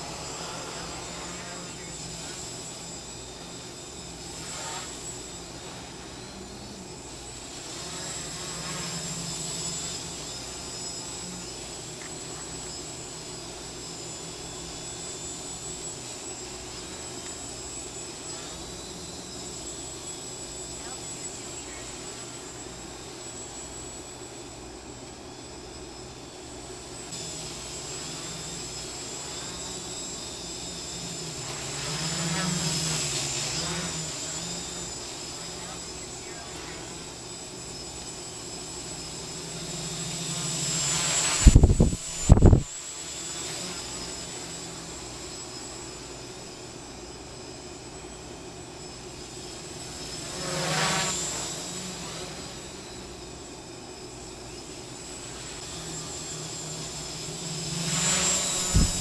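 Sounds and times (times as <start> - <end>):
quadcopter motors humming: 0.0 - 59.0.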